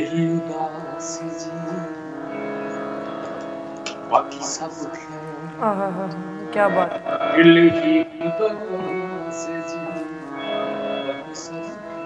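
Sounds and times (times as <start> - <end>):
person singing: 0.0 - 1.9, 2.7 - 12.0
harmonium holding a chord: 0.0 - 12.0.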